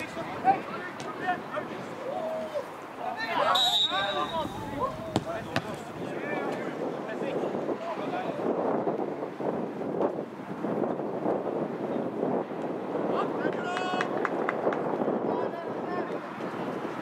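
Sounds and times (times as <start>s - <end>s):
players calling across a pitch: 0.0s - 8.5s
wind on the microphone: 4.2s - 17.0s.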